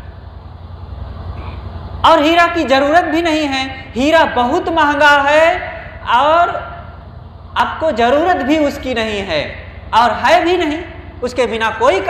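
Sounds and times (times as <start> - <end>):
low background rumble: 0.0 - 12.0
person speaking: 2.0 - 7.0, 7.6 - 12.0.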